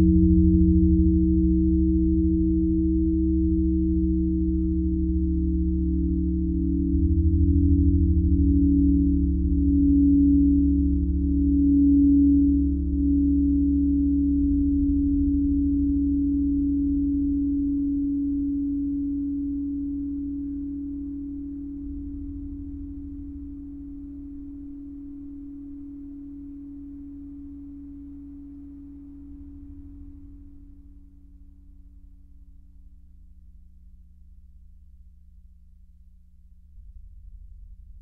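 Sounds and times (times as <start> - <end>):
low synthesizer drone: 0.0 - 33.8.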